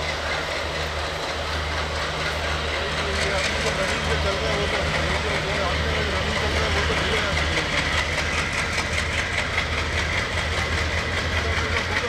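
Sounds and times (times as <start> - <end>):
diesel locomotives droning: 0.0 - 12.0.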